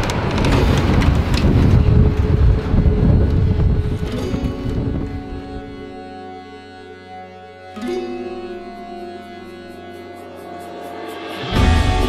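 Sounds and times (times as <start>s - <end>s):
wind buffeting microphone: 0.0s - 6.5s
background music: 2.0s - 12.0s.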